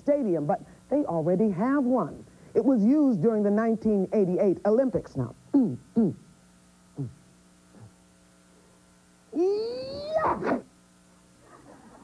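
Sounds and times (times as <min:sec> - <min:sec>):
faint steady hum: 0:00.0 - 0:12.0
woman crying ooh: 0:09.4 - 0:10.6.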